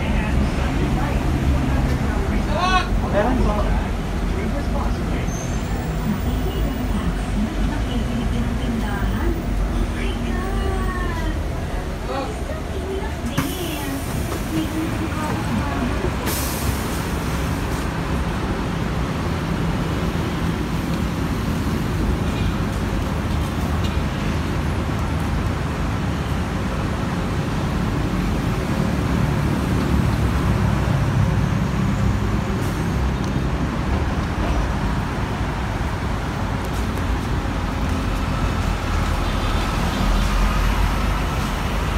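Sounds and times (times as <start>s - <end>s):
bus diesel engine running: 0.0s - 41.9s
roadside traffic noise: 0.0s - 41.9s.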